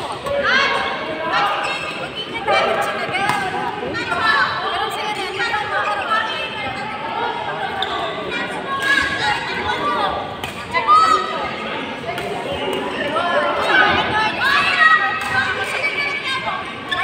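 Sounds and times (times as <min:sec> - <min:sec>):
people's voices echoing: 0:00.0 - 0:17.0
racket hitting shuttlecock: 0:03.3 - 0:03.6, 0:10.4 - 0:10.7.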